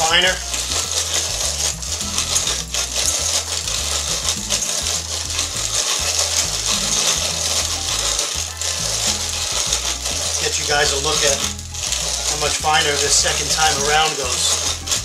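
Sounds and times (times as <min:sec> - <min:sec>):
grain mill grinding: 0:00.0 - 0:15.0.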